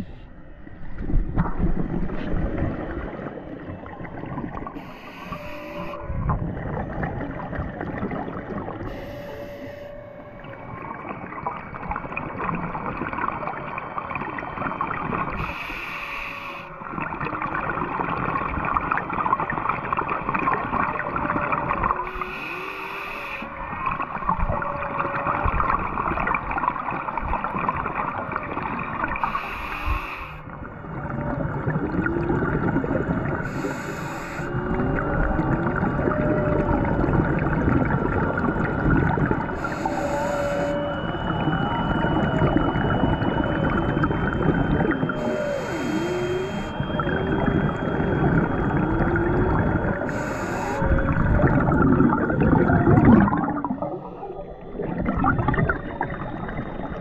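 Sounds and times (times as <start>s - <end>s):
exhaled bubbles rumbling: 0.0s - 15.6s, 16.7s - 22.7s, 23.4s - 29.8s, 30.4s - 57.0s
crackling underwater background: 0.0s - 57.0s
faint whale calls: 3.4s - 57.0s
regulator inhalation hiss: 4.8s - 6.0s, 15.4s - 16.7s, 22.1s - 23.5s, 29.2s - 30.4s, 33.4s - 34.5s, 39.6s - 40.8s, 45.2s - 46.7s, 50.1s - 50.8s.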